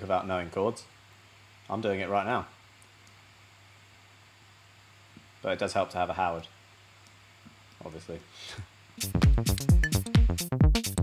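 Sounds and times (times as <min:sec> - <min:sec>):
faint steady hiss: 0:00.0 - 0:09.6.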